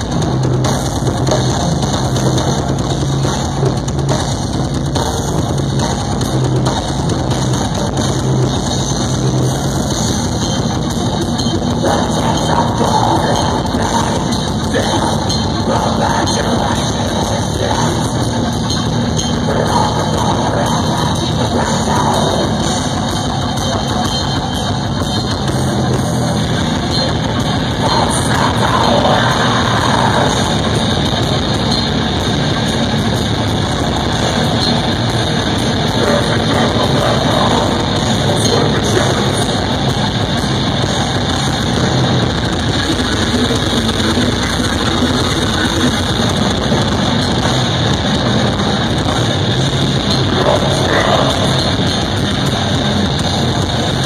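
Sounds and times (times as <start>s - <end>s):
bass guitar: 0.0s - 54.0s
distorted electric guitars: 0.0s - 54.0s
pounding drum kit: 0.0s - 54.0s
singer's vocals: 11.7s - 24.6s, 26.8s - 31.8s, 34.0s - 40.1s, 50.1s - 53.0s.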